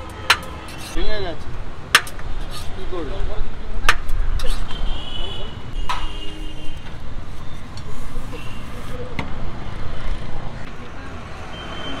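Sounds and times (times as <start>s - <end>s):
traffic running: 0.0s - 12.0s.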